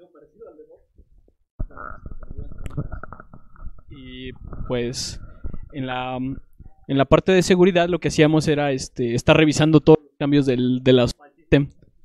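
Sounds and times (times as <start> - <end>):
microphone handling noise: 1.0 - 6.9.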